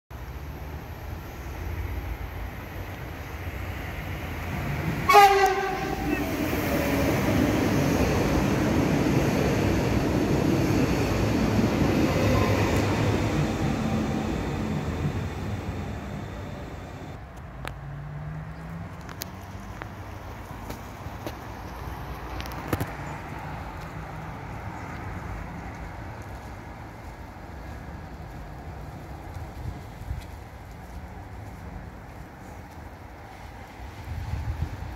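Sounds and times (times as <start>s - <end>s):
train wheels rumbling on rails: 1.1s - 17.2s
train horn blast: 5.0s - 6.4s.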